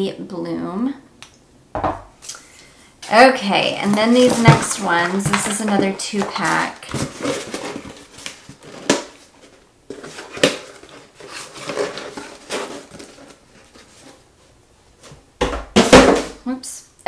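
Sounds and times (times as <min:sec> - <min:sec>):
packaging rustling: 0:03.8 - 0:14.3
bottles clicking and knocking: 0:03.9 - 0:06.5.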